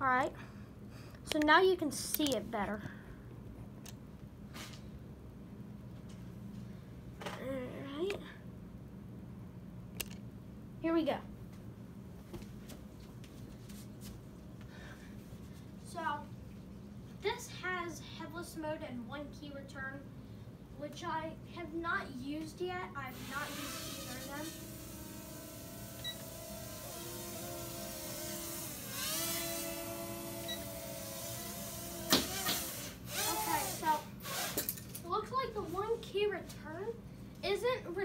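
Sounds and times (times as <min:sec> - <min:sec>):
low steady background hum: 0:00.0 - 0:38.0
drone propellers whining: 0:23.2 - 0:33.8.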